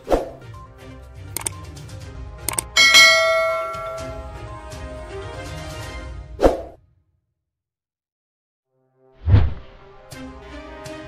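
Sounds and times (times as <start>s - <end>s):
bell chime ringing: 2.5s - 4.5s.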